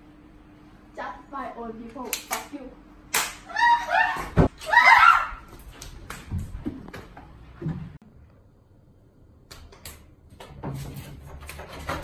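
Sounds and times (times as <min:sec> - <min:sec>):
high-pitched cry: 0:03.4 - 0:05.5.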